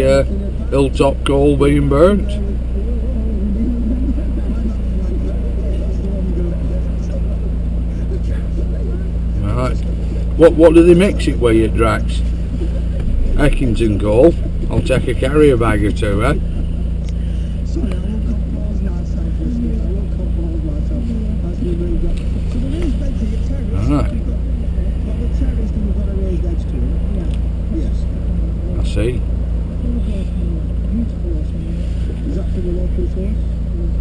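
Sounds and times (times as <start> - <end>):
car engine drone: 0.0 - 34.0
faint voices: 0.0 - 34.0
road noise: 0.0 - 34.0.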